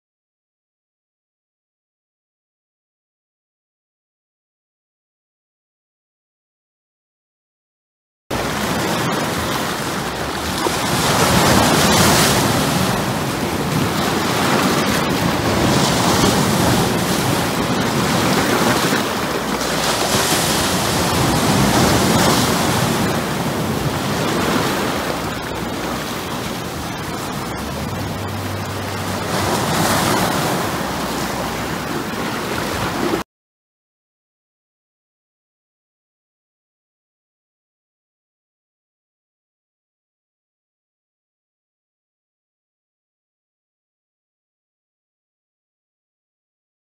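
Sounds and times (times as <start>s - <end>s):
ocean waves breaking: 8.3s - 33.2s.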